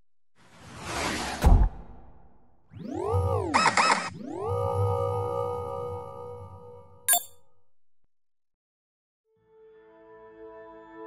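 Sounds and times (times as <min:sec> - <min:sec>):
bright metallic ding: 0:07.1 - 0:07.4.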